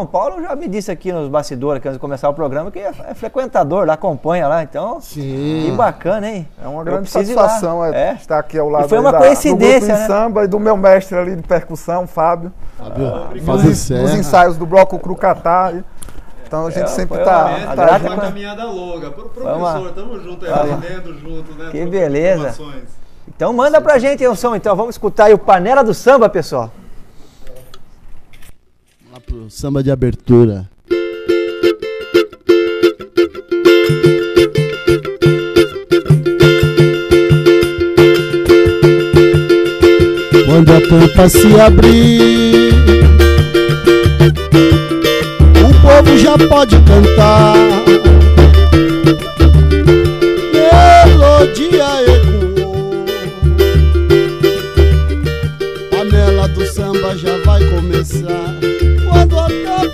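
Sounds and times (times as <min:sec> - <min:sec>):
small guitar strumming: 0:06.9 - 0:07.7, 0:13.4 - 0:14.4, 0:30.9 - 0:59.9
deep drum beat: 0:33.9 - 0:59.9.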